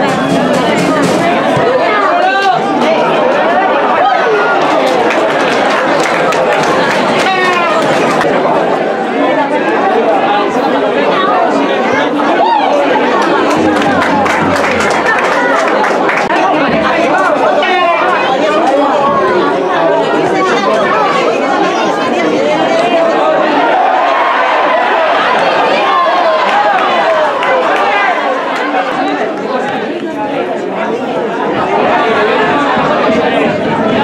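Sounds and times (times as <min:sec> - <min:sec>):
spectators talking and calling out: 0:00.0 - 0:34.0.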